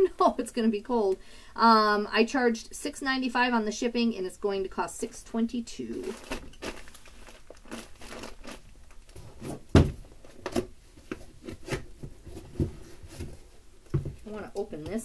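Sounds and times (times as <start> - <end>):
plastic packaging crinkling: 5.9 - 9.5
thud: 9.7 - 10.0.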